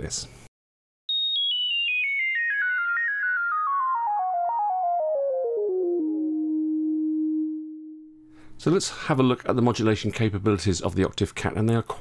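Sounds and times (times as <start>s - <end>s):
synthesizer fast falling notes: 1.1s - 8.0s.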